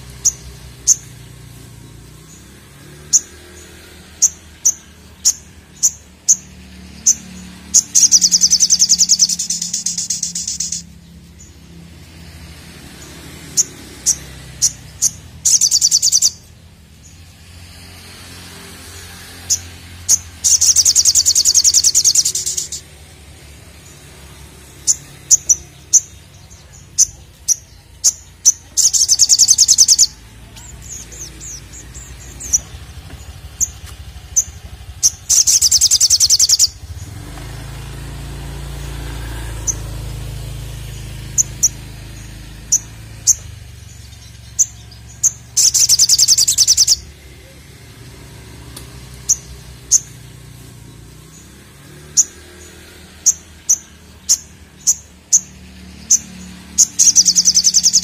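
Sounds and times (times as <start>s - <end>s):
bird chips: 0.0s - 16.5s, 18.1s - 23.0s, 23.8s - 58.0s
bird high rapid trills: 0.0s - 58.0s.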